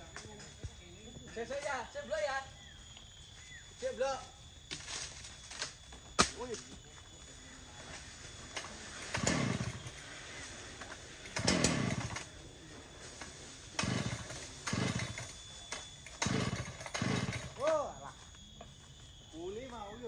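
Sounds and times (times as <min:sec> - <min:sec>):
chainsaw engine turning over: 0:08.5 - 0:12.4, 0:13.2 - 0:17.8.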